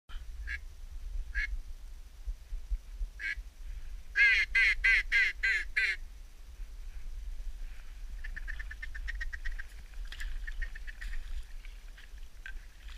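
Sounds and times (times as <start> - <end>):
duck quacking: 4.2 - 6.0.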